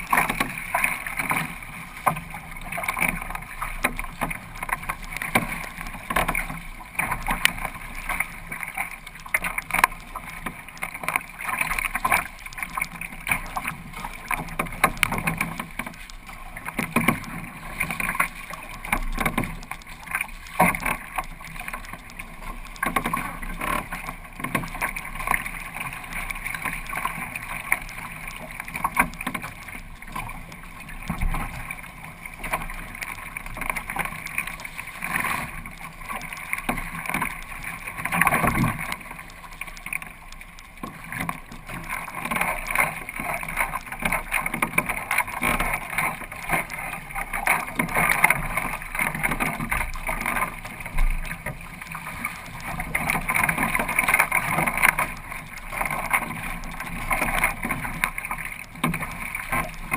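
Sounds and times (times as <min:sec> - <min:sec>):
water splashes and slaps: 0:00.0 - 0:59.9
water washing against hull: 0:00.0 - 0:59.9.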